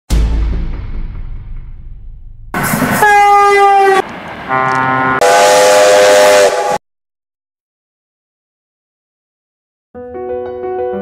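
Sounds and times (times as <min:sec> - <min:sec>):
train horn blasts: 0:03.0 - 0:06.8.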